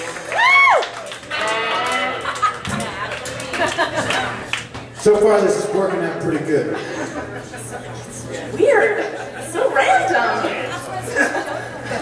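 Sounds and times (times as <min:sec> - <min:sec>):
bar crowd noise: 0:00.0 - 0:12.0
person whooping: 0:00.3 - 0:02.3.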